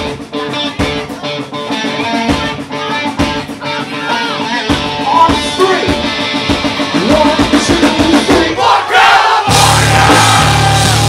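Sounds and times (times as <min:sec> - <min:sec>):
distorted electric guitar: 0:00.0 - 0:08.5, 0:09.5 - 0:11.0
drums keeping a steady beat: 0:00.0 - 0:11.0.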